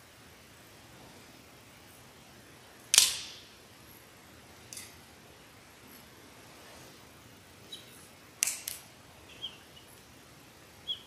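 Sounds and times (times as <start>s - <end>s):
sharp snap in reverberant church: 2.9s - 3.5s.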